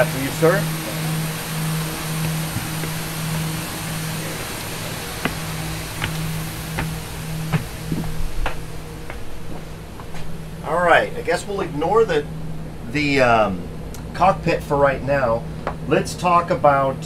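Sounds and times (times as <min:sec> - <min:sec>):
steady low hum: 0:00.0 - 0:17.0
footsteps on steps and floor: 0:02.1 - 0:10.4.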